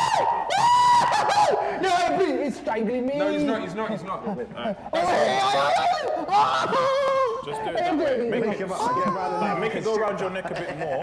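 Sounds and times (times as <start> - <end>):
young men shrieking and yelling: 0.0 - 2.4, 4.7 - 9.9.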